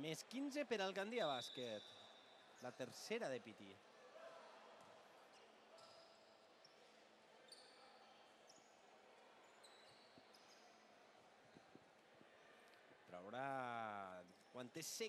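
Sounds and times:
low crowd murmur: 3.8s - 14.6s
sneaker squeaks: 5.7s - 6.8s, 7.4s - 8.6s, 9.4s - 10.7s.

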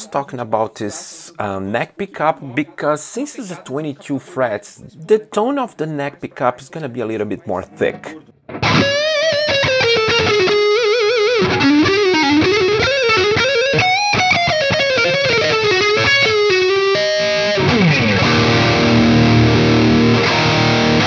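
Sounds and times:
distorted electric guitar lead: 8.0s - 21.0s.

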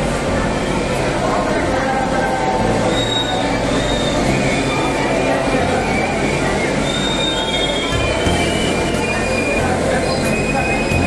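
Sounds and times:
crowd voices and shuffling: 0.0s - 11.0s.

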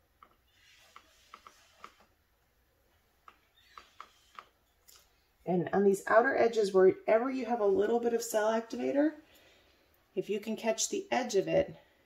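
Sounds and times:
small clicks: 3.2s - 5.1s.

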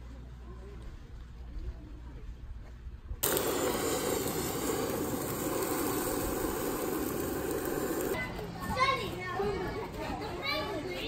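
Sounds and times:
dense rushing noise: 3.2s - 8.2s
child's voice: 8.2s - 11.0s.

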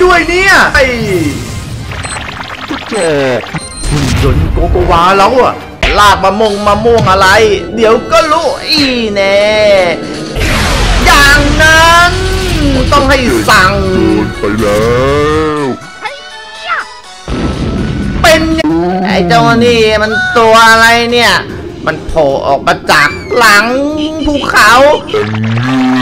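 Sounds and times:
cartoon background music: 0.0s - 26.0s
cartoon monster cry: 25.4s - 26.0s.

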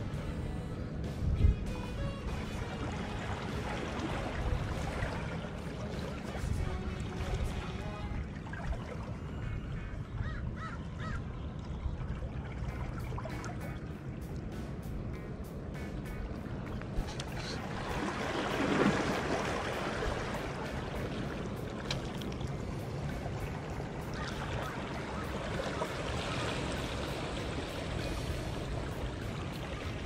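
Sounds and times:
background music: 0.0s - 10.8s, 12.2s - 30.0s
sea water washing against rocks: 2.4s - 8.8s, 16.1s - 30.0s.

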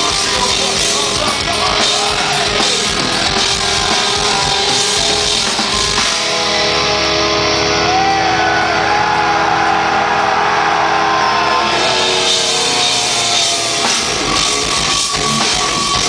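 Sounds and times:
death metal band playing live: 0.0s - 16.0s.

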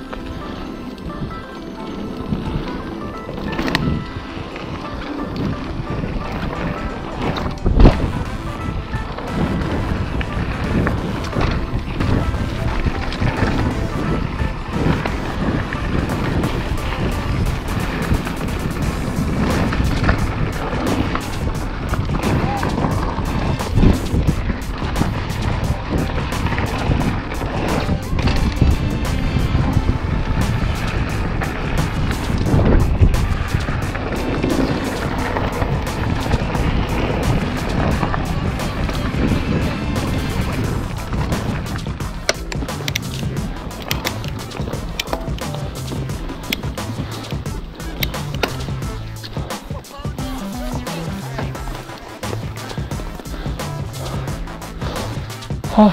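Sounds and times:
bike tyres rolling over dirt: 0.0s - 55.9s
wind noise on microphone: 0.0s - 55.9s
bike chain and frame rattling: 1.8s - 50.1s.

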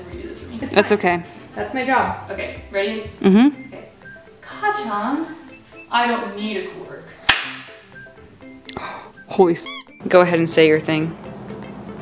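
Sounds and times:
pistol shot crack: 7.3s - 7.8s.

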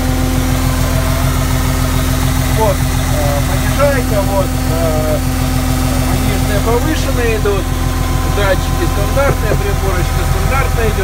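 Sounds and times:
loud tractor engine idling: 0.0s - 11.0s.

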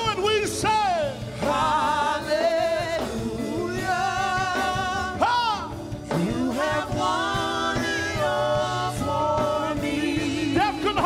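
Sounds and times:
gospel singing: 0.0s - 11.0s.

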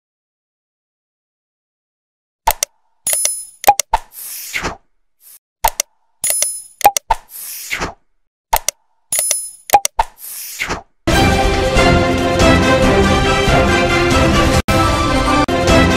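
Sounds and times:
sharp mouse clicks: 2.5s - 10.9s.

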